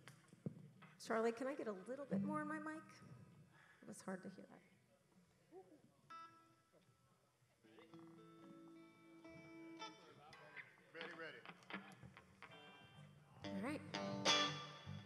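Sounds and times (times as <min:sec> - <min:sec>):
held guitar notes: 0:07.7 - 0:15.0.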